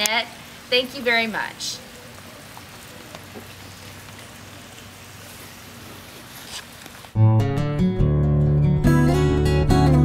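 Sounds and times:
patter of falling water: 0:00.0 - 0:07.2.

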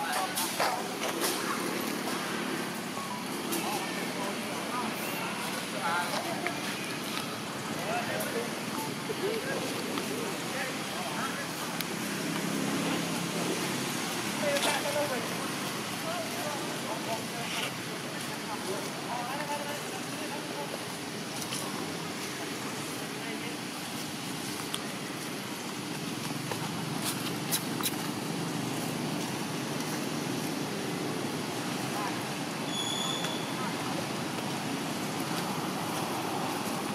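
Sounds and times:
far-off traffic hum: 0:00.0 - 0:36.9.

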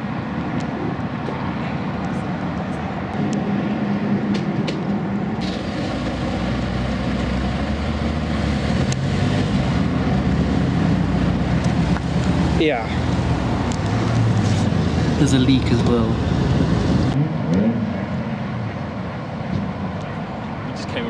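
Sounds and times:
car engine idling: 0:05.0 - 0:17.2.

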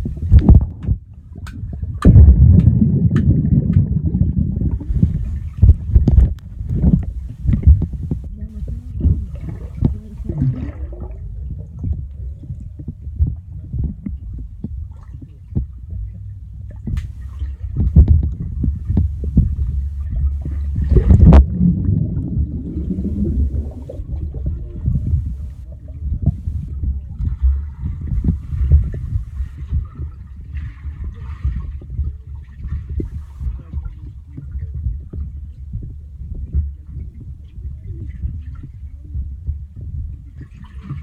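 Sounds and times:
underwater knocks and clicks: 0:00.0 - 0:41.0
underwater water rumble: 0:00.0 - 0:41.0
water rushing: 0:06.6 - 0:11.0, 0:17.0 - 0:25.6.

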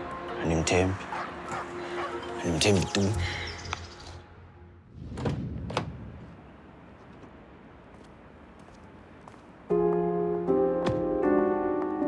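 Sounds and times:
quiet background music: 0:00.0 - 0:04.8, 0:09.5 - 0:12.0.

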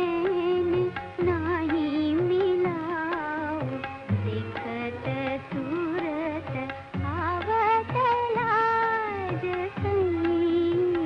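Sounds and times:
light drum accompaniment: 0:00.0 - 0:11.0
woman singing with vibrato: 0:00.0 - 0:11.0.

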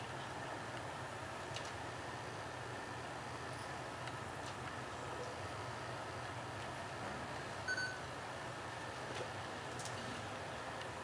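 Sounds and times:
short electronic beep: 0:07.7 - 0:08.0.

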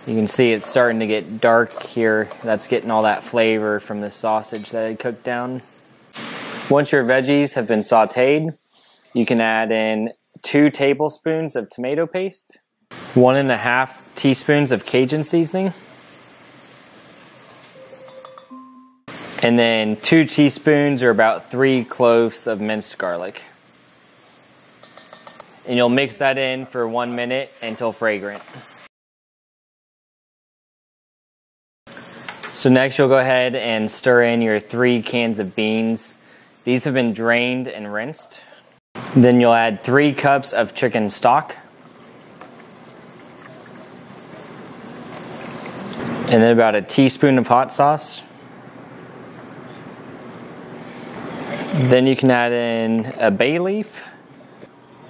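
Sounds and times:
vegetables sizzling in a pot: 0:00.0 - 0:10.6, 0:12.9 - 0:18.0, 0:19.1 - 0:28.9, 0:31.9 - 0:46.0
stock pouring into a pot: 0:40.9 - 0:46.0.

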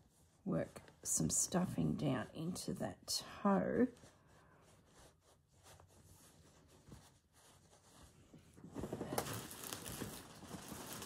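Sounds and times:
fabric and wadding rustling: 0:00.0 - 0:02.8, 0:03.5 - 0:11.0.

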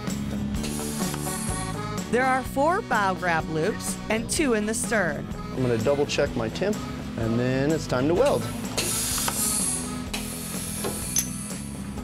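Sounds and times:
background music: 0:00.0 - 0:12.0
welding press hissing: 0:00.6 - 0:02.4, 0:08.2 - 0:12.0.

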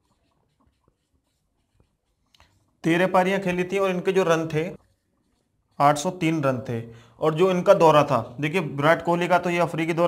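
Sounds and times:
marker writing on whiteboard: 0:00.0 - 0:08.2.

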